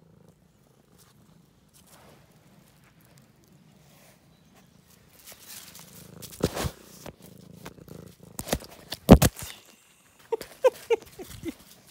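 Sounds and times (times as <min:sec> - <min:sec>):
cat purring: 0:00.0 - 0:09.1.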